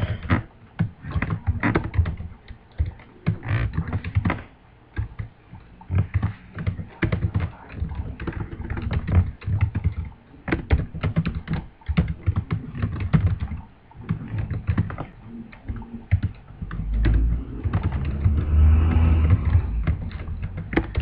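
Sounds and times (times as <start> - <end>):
computer keyboard typing: 0.1 - 4.4, 5.9 - 21.0.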